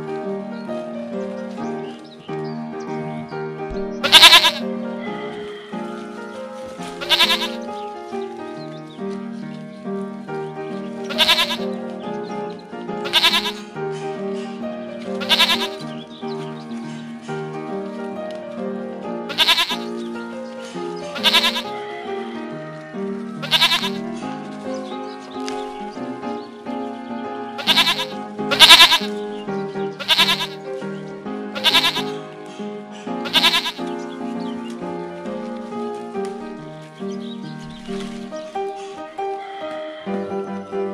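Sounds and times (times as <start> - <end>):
background music: 0.0 - 40.9
goat bleating: 4.0 - 5.9, 7.0 - 7.7, 11.1 - 11.7, 13.0 - 13.6, 15.2 - 15.8, 19.3 - 19.9, 21.1 - 22.4, 23.4 - 24.0, 27.6 - 29.1, 30.0 - 30.6, 31.6 - 32.2, 33.2 - 33.8.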